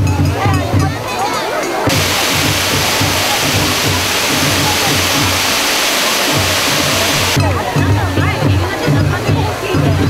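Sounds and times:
fireworks hissing: 1.9s - 7.4s
low drum beat: 1.9s - 7.4s.

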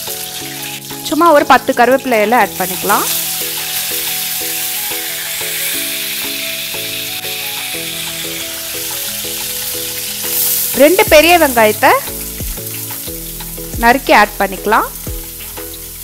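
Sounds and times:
leaves and garlic sizzling in oil: 0.0s - 16.0s
soft background music: 0.0s - 16.0s.

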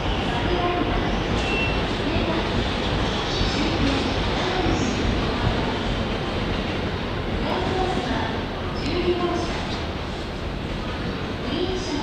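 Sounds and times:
train rumble: 0.0s - 12.0s.

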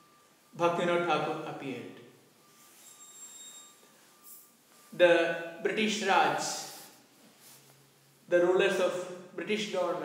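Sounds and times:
thin high steady tone: 0.0s - 8.2s
faint hiss: 0.0s - 10.0s.

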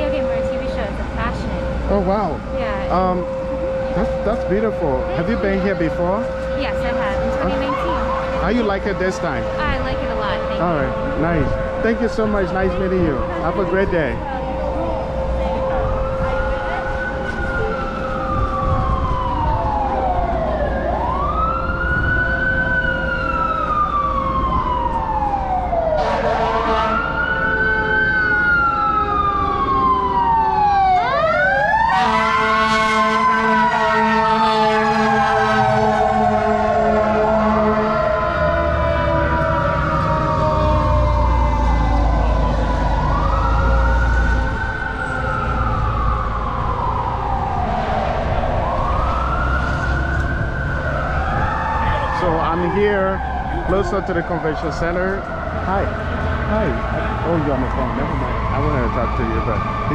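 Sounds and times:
fire truck siren wailing: 0.0s - 59.9s
steady horn tone: 2.9s - 16.8s, 25.9s - 27.2s, 31.9s - 40.0s.

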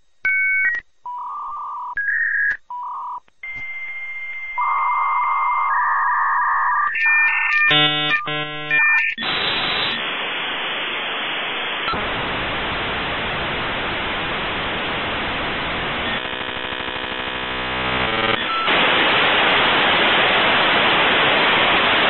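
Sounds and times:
rapid modem tones: 0.3s - 22.0s
modem hissing static: 4.6s - 22.0s.

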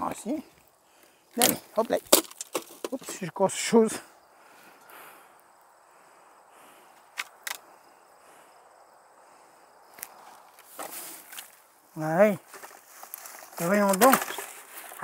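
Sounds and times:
brief rustle: 12.4s - 15.0s.

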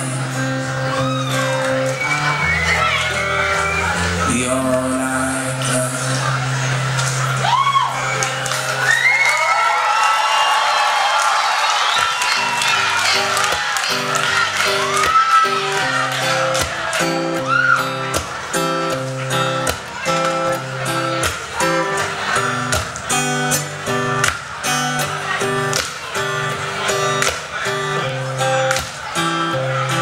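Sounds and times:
acoustic guitar playing: 0.0s - 9.0s, 12.0s - 30.0s
audience cheering and whooping: 0.8s - 4.3s, 7.2s - 19.0s.

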